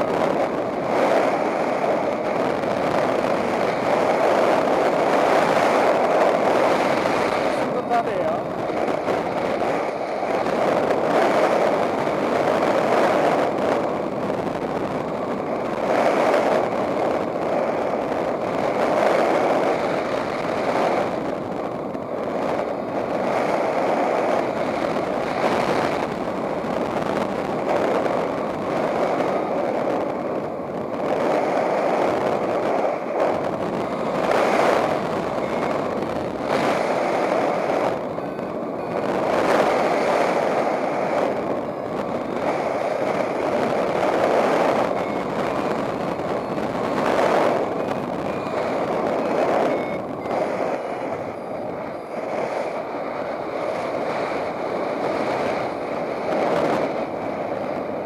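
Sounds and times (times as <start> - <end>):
airflow rushing over microphone: 0.0 - 58.0.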